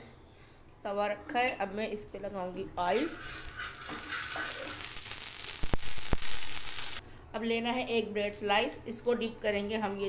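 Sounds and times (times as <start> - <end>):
oil sizzling on a hot pan: 3.0 - 7.0.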